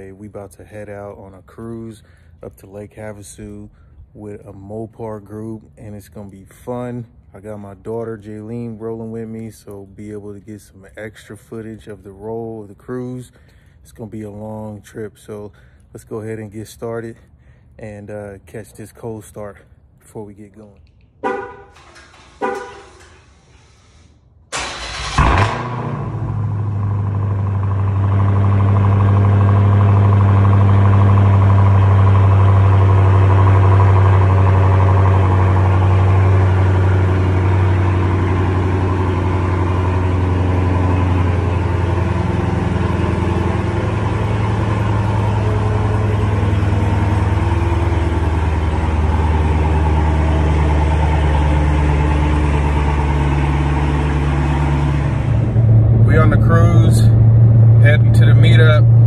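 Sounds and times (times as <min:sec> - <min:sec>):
car engine starting and idling: 0:20.6 - 0:59.0.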